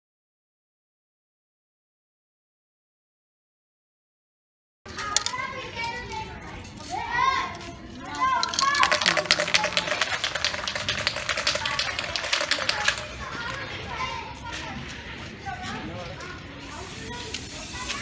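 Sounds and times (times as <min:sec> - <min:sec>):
children's voices: 0:04.9 - 0:18.0
spray paint can rattling: 0:05.0 - 0:05.4, 0:08.1 - 0:13.8, 0:16.8 - 0:18.0.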